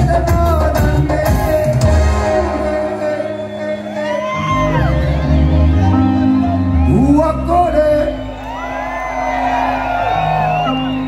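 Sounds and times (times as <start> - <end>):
live band music: 0.0 - 11.0
crowd whooping and shouting: 1.9 - 11.0.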